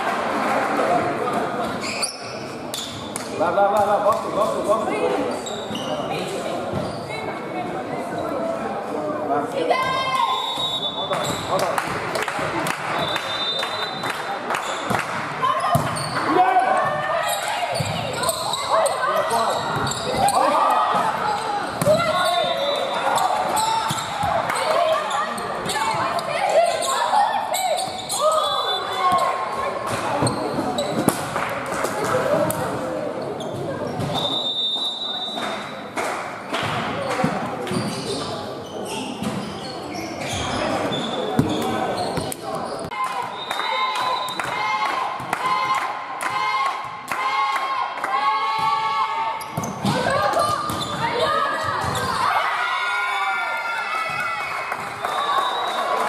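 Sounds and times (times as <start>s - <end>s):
voices talking and calling out: 0.0s - 36.0s
whistle blowing: 10.3s - 11.2s, 13.0s - 14.1s, 28.2s - 29.0s, 34.2s - 35.4s, 43.3s - 44.5s, 55.0s - 55.9s.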